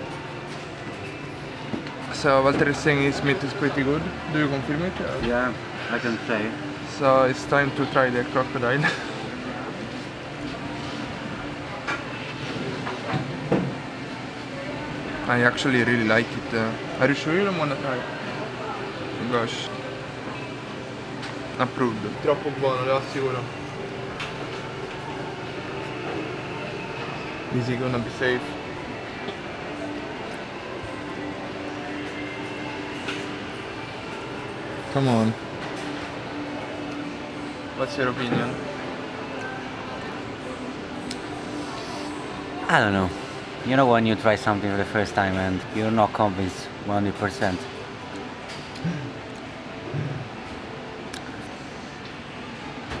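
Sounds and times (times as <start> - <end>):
continuous hum: 0.0 - 53.0
restaurant room noise: 0.0 - 53.0.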